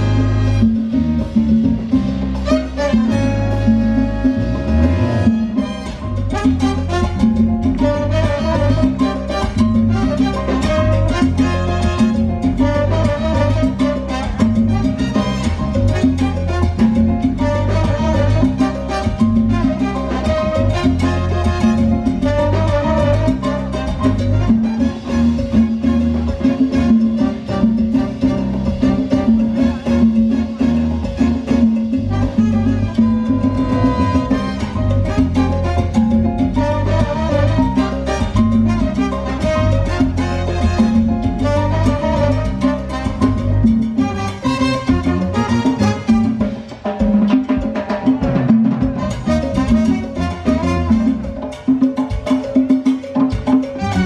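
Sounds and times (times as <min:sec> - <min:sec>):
salsa band playing: 0:00.0 - 0:54.0.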